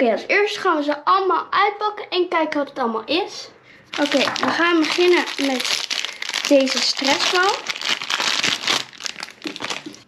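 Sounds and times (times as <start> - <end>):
plastic wrapper crinkling: 3.9 - 10.0.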